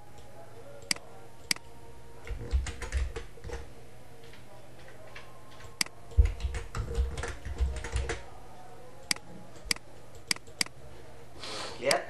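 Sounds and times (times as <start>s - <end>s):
typing on computer keyboard: 0.8s - 8.2s
sharp click: 9.1s - 10.7s.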